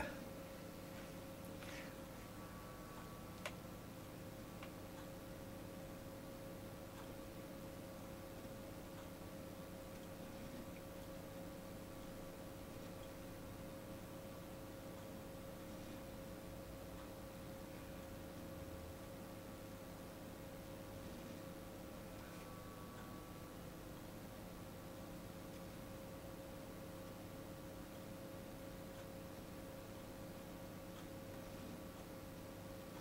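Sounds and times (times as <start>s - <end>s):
faint hum with high note: 0.0s - 33.0s
faint regular ticks: 20.9s - 24.1s, 25.2s - 33.0s.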